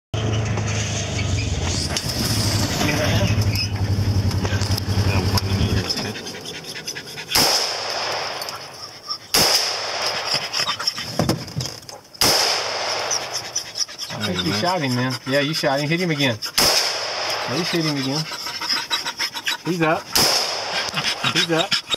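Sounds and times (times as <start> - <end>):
vehicle engine running: 0.2 - 7.8
gunshots with echo: 7.3 - 8.5, 9.3 - 10.3, 12.2 - 13.3, 16.6 - 17.8, 20.2 - 20.8.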